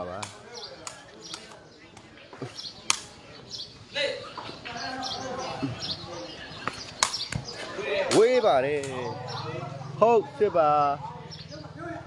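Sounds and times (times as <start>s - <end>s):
sharp knocks on concrete: 6.6s - 9.0s.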